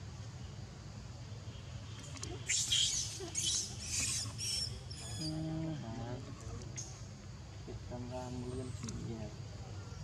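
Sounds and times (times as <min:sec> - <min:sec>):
baby monkey squealing: 0:02.4 - 0:05.3.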